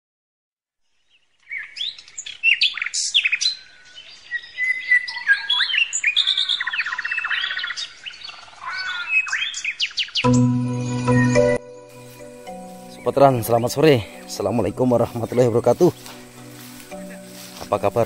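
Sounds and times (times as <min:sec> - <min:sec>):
birds chirping and singing: 0:00.9 - 0:18.0
fast bird trill: 0:04.4 - 0:10.4.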